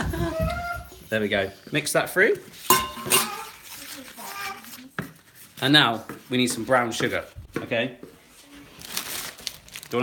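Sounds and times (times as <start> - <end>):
crinkling rustle: 3.3 - 5.7, 8.3 - 10.0.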